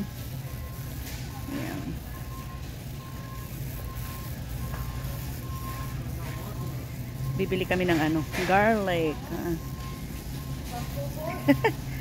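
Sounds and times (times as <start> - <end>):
electronic warning beeps: 0.0 - 12.0
steady low hum: 0.0 - 12.0.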